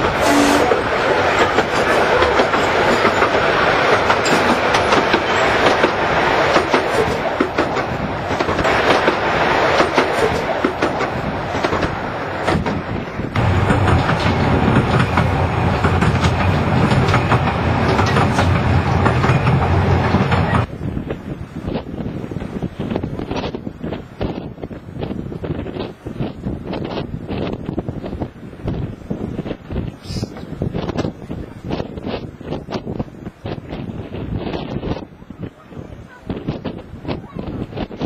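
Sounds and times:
steam locomotive short sharp sounds: 0:00.0 - 0:20.7, 0:29.8 - 0:38.0
train carriage rumbling: 0:00.0 - 0:38.0.

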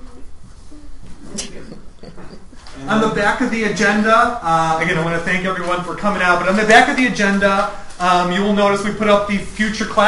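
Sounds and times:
presenter speaking: 0:02.8 - 0:10.0.

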